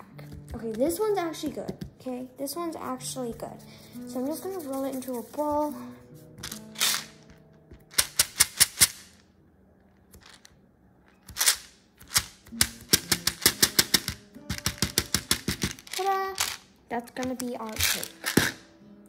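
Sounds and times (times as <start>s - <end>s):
hand patting clay on glass: 0.2s - 2.1s.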